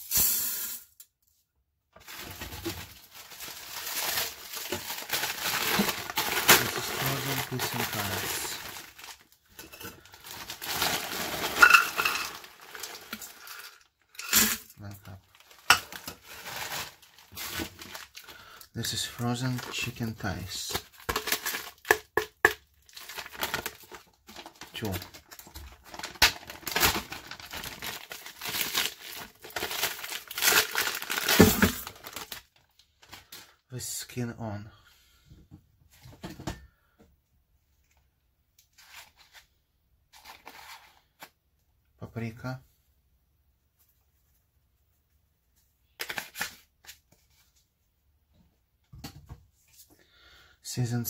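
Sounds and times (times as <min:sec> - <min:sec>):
plastic bag crinkling: 0:02.0 - 0:22.0, 0:22.8 - 0:33.6
spice containers rattling: 0:09.6 - 0:14.6.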